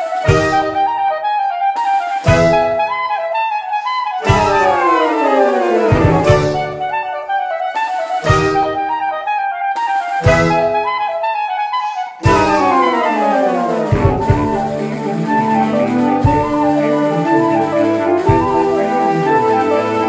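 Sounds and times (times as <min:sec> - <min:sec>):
saxophone ensemble playing: 0:03.8 - 0:07.2, 0:11.5 - 0:20.0.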